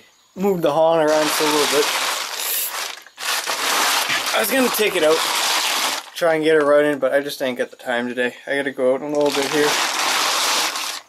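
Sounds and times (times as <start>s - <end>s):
plastic tarp rustling and crinkling: 1.0s - 7.1s, 9.1s - 11.0s.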